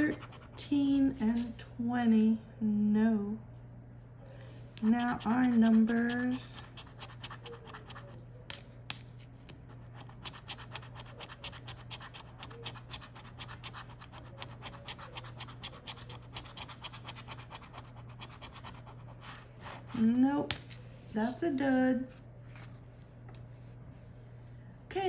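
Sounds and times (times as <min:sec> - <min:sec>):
coin scratching lottery ticket: 0:04.8 - 0:08.2, 0:09.9 - 0:19.4.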